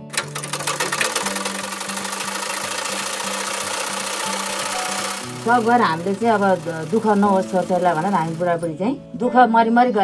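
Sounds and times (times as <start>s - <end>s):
sewing machine running: 0.0s - 8.8s.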